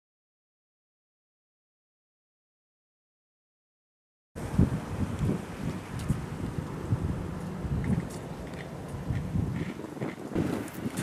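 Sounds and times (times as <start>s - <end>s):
wind buffeting microphone: 4.4s - 11.0s.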